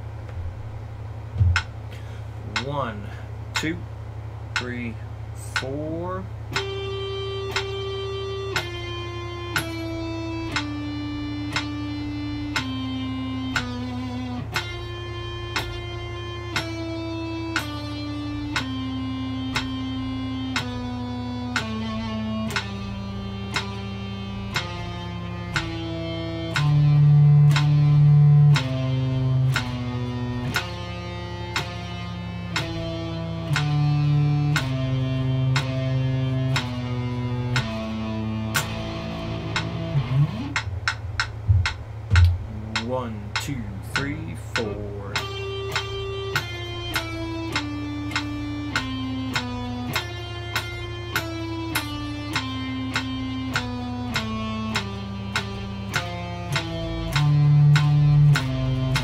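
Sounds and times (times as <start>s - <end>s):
electric guitar single notes: 0.0s - 59.0s
metronome click: 2.5s - 2.8s, 3.6s - 3.8s, 4.6s - 4.9s, 5.6s - 59.0s.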